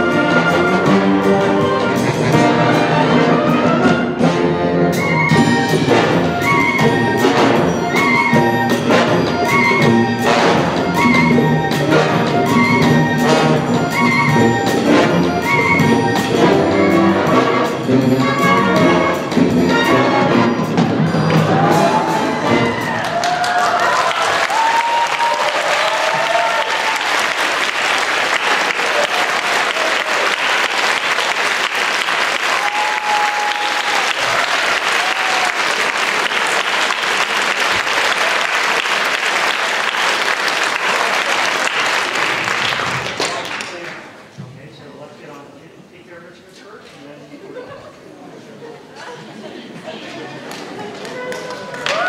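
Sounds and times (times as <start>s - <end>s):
cheering shouts: 21.3s - 27.5s, 28.4s - 30.4s, 32.4s - 36.2s, 51.1s - 52.0s
audience applause: 21.3s - 44.2s, 49.4s - 52.0s.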